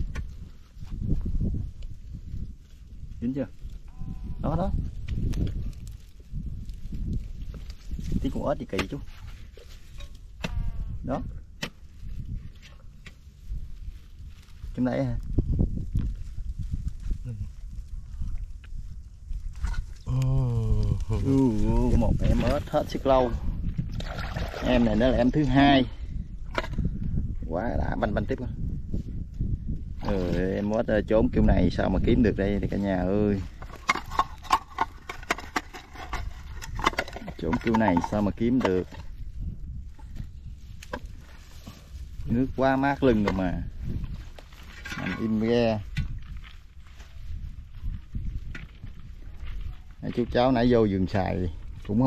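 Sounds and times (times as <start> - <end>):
wind rumble on microphone: 0.0 - 52.0
stick scraping in dry earth: 4.5 - 24.1, 28.0 - 52.0.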